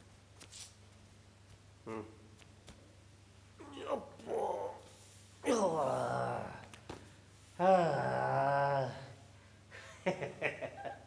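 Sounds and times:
man crying out: 5.4s - 6.7s, 7.6s - 9.2s.

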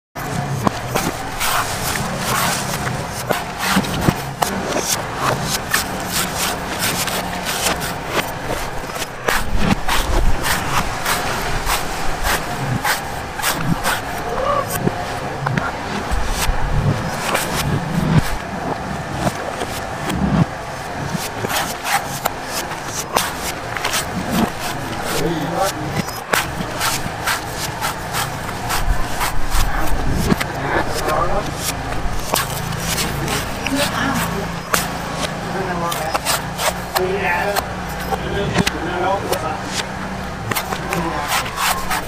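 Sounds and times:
steady background noise: 0.2s - 42.0s
knife chopping coconut husk: 0.3s - 18.5s, 19.1s - 42.0s.

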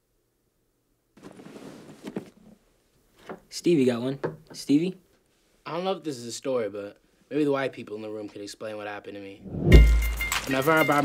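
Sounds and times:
short soft sound: 9.4s - 10.1s.

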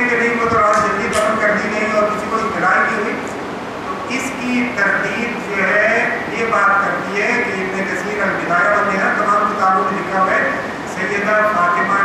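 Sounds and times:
man lecturing: 0.0s - 3.3s, 3.9s - 12.0s.

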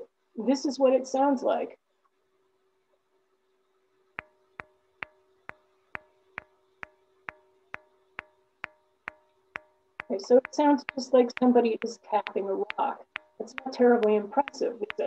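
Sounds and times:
rock being tapped: 4.2s - 15.0s.

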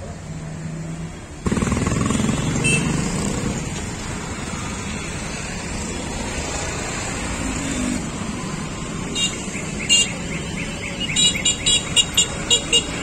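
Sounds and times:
road traffic hum: 0.0s - 13.0s.

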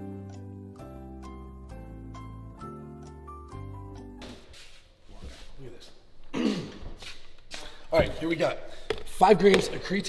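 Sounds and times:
background music: 0.0s - 5.4s.

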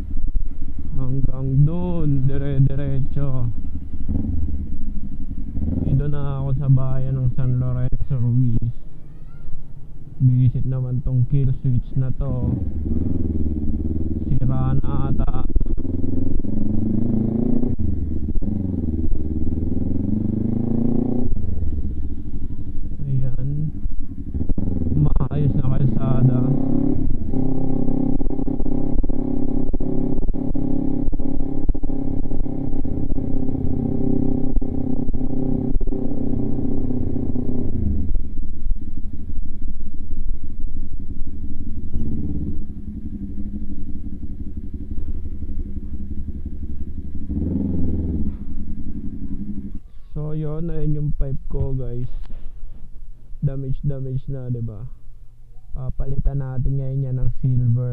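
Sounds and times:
motorcycle engine revving: 0.0s - 8.7s, 11.4s - 55.0s.

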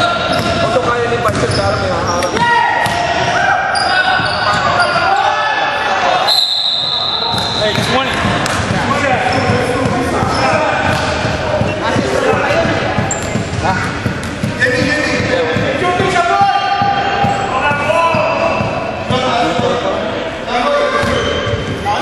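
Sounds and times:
sneakers squeaking: 0.0s - 19.8s, 20.7s - 22.0s
players' voices echoing: 0.0s - 22.0s
basketball bouncing: 0.2s - 3.1s, 7.3s - 16.2s
referee's whistle: 6.2s - 7.9s.

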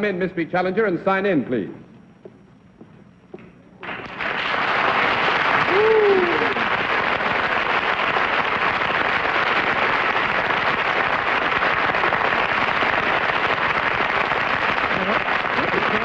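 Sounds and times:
audience applauding: 3.8s - 16.0s.

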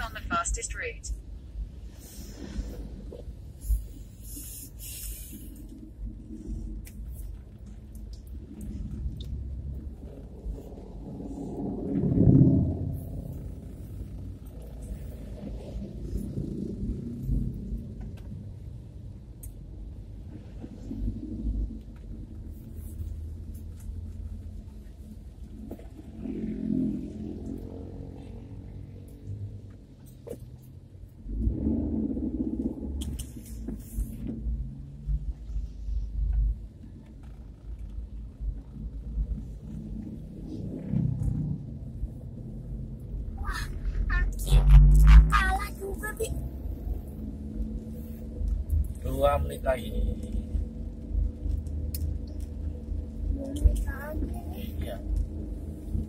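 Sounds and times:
car engine rumble inside cabin: 0.0s - 56.0s.

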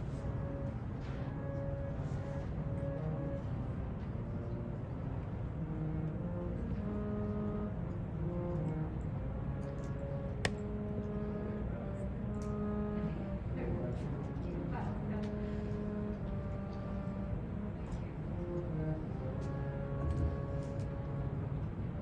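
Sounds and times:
harmonium melody: 5.8s - 8.6s, 9.3s - 13.6s, 18.7s - 21.5s.

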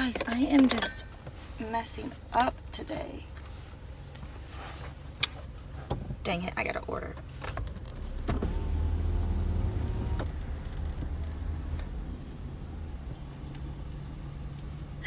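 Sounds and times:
power window motor running: 7.8s - 12.0s.

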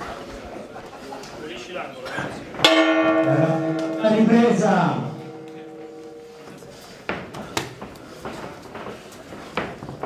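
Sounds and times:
voices: 0.7s - 6.9s
boxing ring bell ringing: 2.7s - 6.9s.

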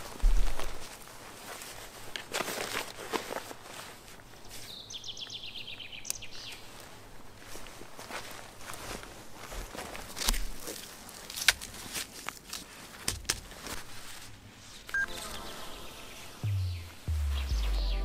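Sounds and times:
footsteps on forest ground: 0.0s - 14.4s.

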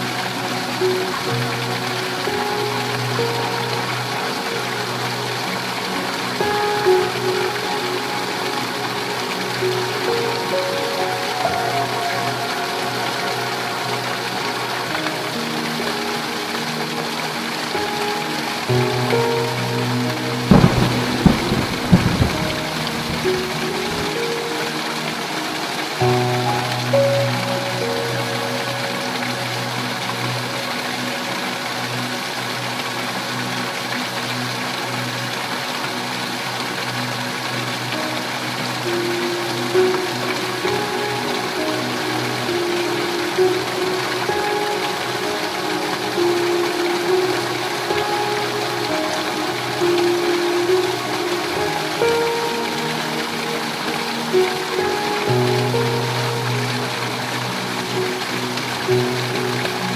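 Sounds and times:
heavy rain falling: 0.0s - 59.9s
soft background music: 0.0s - 59.9s
thunderclap and rumble: 20.5s - 24.0s.

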